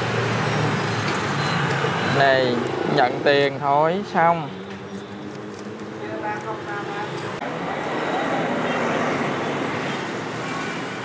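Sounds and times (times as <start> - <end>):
traffic rushing by: 0.0 - 11.0.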